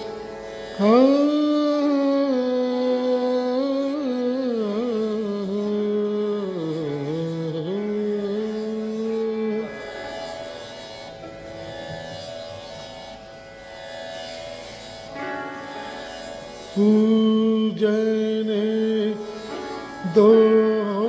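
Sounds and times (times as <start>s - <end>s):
folk song with sarangi: 0.0s - 21.0s.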